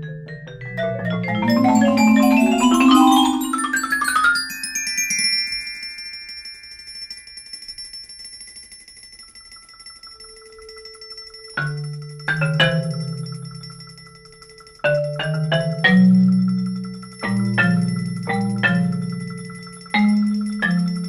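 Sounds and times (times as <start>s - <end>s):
marimba and mallet percussion: 0.0s - 6.1s, 11.6s - 21.0s.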